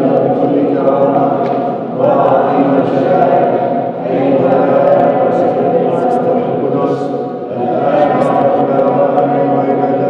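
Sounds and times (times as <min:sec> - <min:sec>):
choir chanting a hymn: 0:00.0 - 0:10.0.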